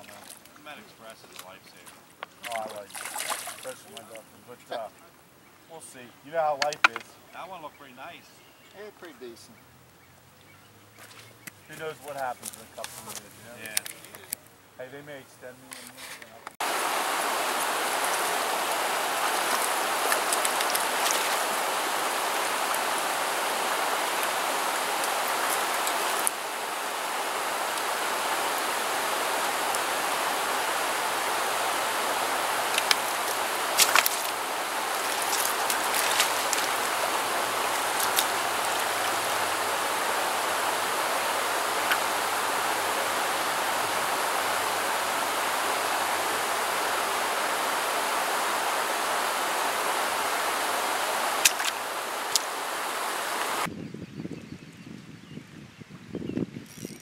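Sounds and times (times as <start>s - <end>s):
flowing creek water: 0.0s - 53.7s.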